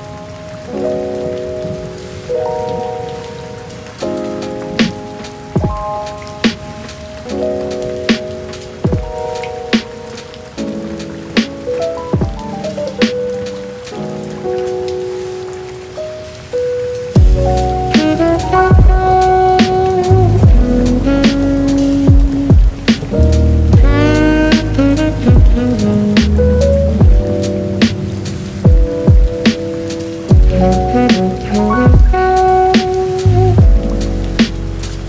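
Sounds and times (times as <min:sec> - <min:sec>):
chill instrumental beat: 0:00.0 - 0:35.0
steady rain: 0:00.0 - 0:35.0
kick drum hits: 0:17.2 - 0:17.4, 0:18.7 - 0:19.0, 0:20.4 - 0:20.7, 0:22.1 - 0:22.8, 0:23.8 - 0:24.0, 0:25.3 - 0:25.6, 0:27.0 - 0:27.2, 0:28.7 - 0:29.4, 0:30.3 - 0:30.6, 0:31.9 - 0:32.2, 0:33.6 - 0:33.8.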